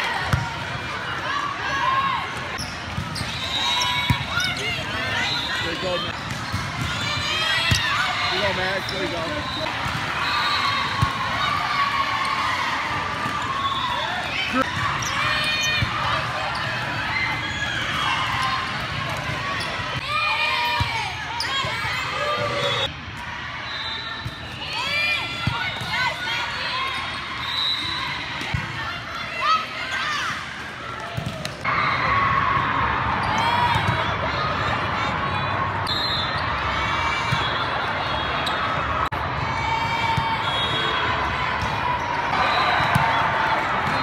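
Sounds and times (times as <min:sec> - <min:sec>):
players calling out: 0:00.0 - 0:22.9
spectators talking: 0:00.0 - 0:23.0
crowd chatter: 0:00.0 - 0:44.0
volleyballs hit and bouncing: 0:05.8 - 0:10.2, 0:30.5 - 0:31.7
volleyball hits: 0:42.8 - 0:44.0.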